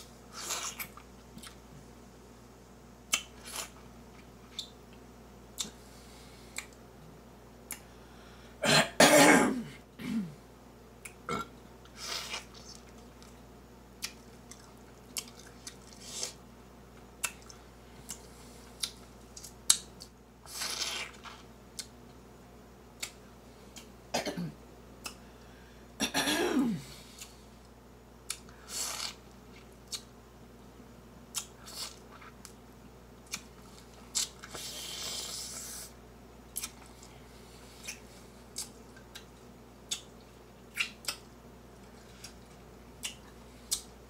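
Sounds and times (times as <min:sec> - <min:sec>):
woman clearing her throat: 0:08.6 - 0:10.4, 0:26.0 - 0:26.8
wet mouth clicks: 0:40.7 - 0:41.2.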